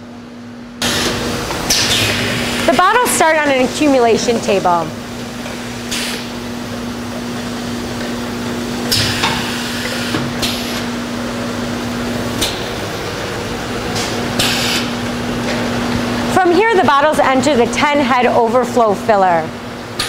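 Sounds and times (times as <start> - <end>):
bottling machine drive hum: 0.0 - 20.0.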